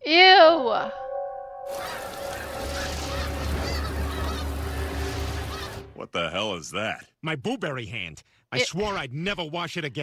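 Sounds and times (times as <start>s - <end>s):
birds calling: 1.7s - 6.0s.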